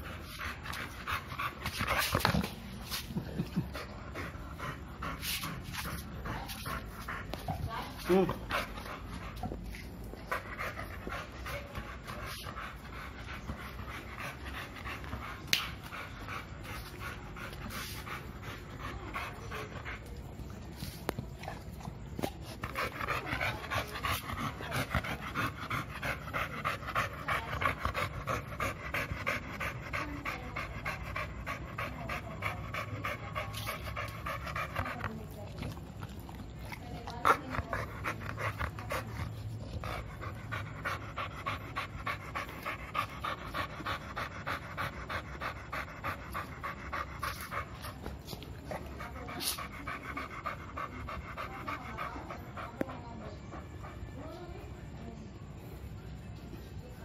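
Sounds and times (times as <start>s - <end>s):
dog panting: 0.0s - 56.0s.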